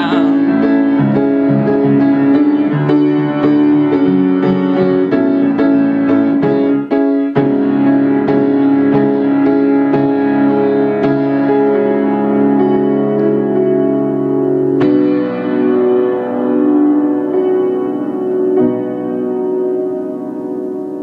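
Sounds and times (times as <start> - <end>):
solo piano playing: 0.0 - 21.0.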